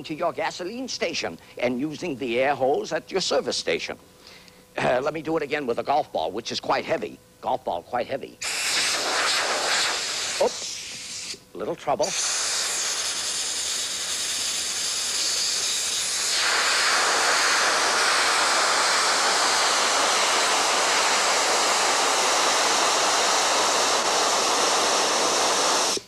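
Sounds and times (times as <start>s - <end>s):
compressed air hissing: 8.4s - 11.4s, 12.0s - 26.0s.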